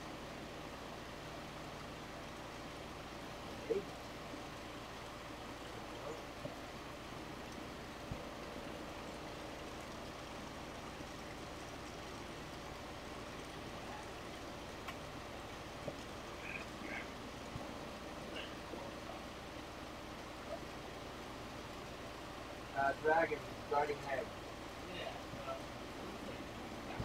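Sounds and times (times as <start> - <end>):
faint clicks: 13.4 - 15.1.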